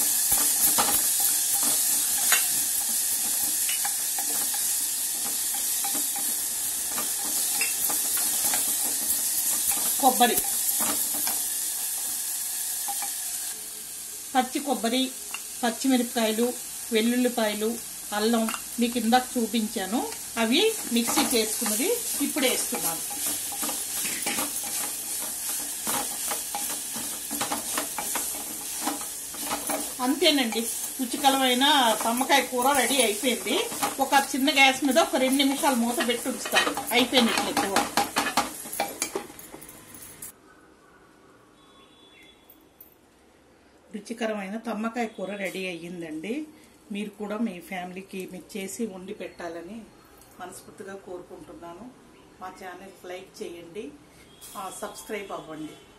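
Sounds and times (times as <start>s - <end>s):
beans sizzling in oil: 0.0s - 40.4s
wooden spoon stirring and scraping: 0.2s - 11.4s, 20.1s - 39.6s.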